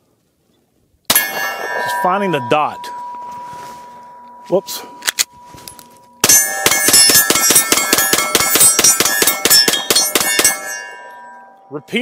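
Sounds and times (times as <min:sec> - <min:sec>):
steel targets ringing: 0:01.1 - 0:12.0.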